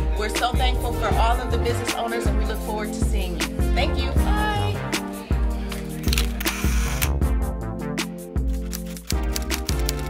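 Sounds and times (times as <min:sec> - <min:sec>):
background music with steady beat: 0:00.0 - 0:10.0
camera shutter click: 0:06.0 - 0:07.2.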